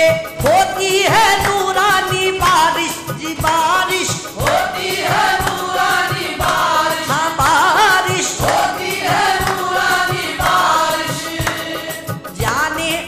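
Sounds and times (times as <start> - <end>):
steady drum beat: 0.0 - 13.0.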